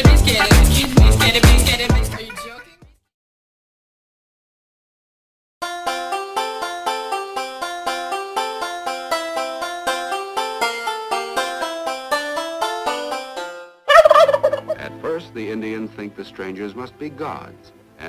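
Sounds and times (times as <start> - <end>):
plucked-string tune: 5.6 - 15.6
turkey gobbling: 13.9 - 15.2.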